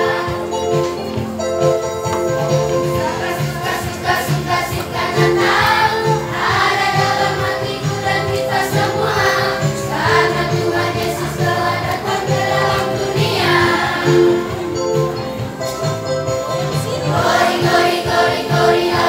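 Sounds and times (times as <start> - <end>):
children's choir singing: 0.0 - 1.0, 2.8 - 19.0
instrumental accompaniment with bass: 0.0 - 19.0.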